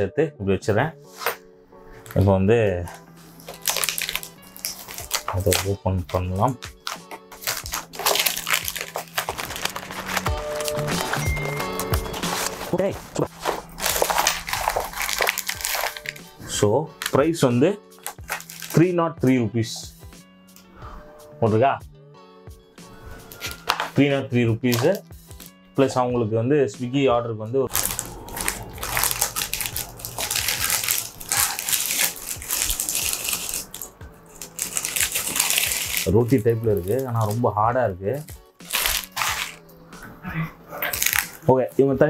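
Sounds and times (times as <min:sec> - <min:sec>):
paper bag crinkling: 0:02.9 - 0:16.4, 0:18.0 - 0:18.8, 0:27.7 - 0:37.4, 0:38.1 - 0:39.6, 0:40.8 - 0:41.5.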